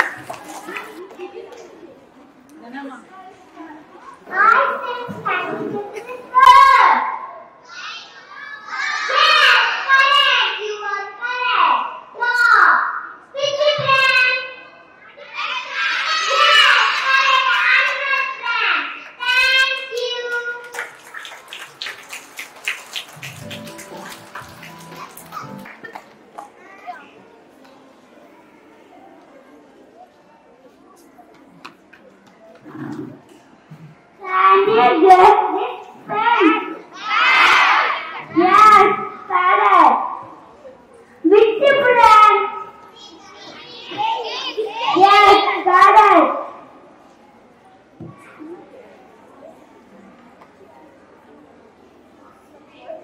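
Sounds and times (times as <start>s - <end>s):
faint room murmur: 0.0s - 53.0s
young children calling out: 4.2s - 20.7s, 34.2s - 40.4s, 41.3s - 46.6s.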